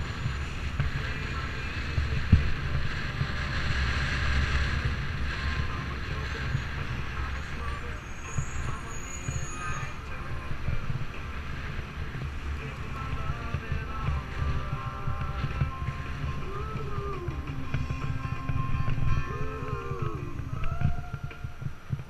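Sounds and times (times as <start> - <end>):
passing traffic: 0.0 - 22.0
wind rumbling on microphone: 0.0 - 22.0.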